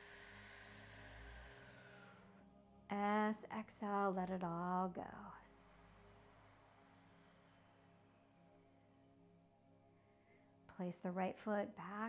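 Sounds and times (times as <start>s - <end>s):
woman exhaling with hiss: 0.0s - 2.4s, 5.5s - 8.9s.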